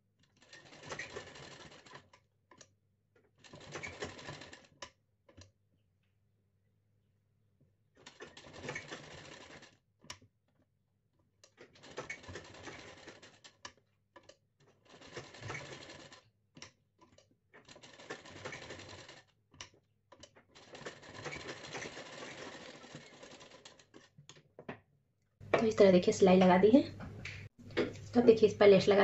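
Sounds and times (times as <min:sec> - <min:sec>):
sewing machine stitching: 0:00.2 - 0:02.7, 0:03.4 - 0:05.5, 0:08.0 - 0:09.8, 0:11.4 - 0:16.3, 0:17.0 - 0:24.4.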